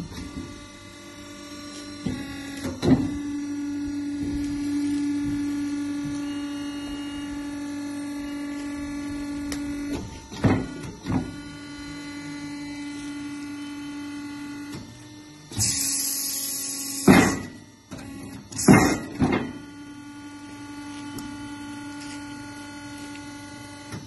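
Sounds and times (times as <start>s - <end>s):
electric drive humming: 0.0s - 24.0s.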